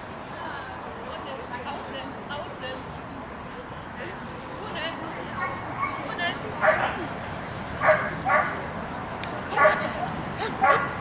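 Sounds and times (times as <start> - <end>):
dog barking: 6.6 - 6.9, 7.8 - 8.6, 9.6 - 9.9, 10.6 - 11.0.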